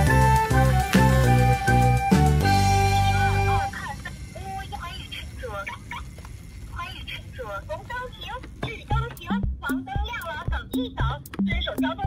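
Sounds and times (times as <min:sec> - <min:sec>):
music: 0:00.0 - 0:05.1, 0:08.8 - 0:12.0.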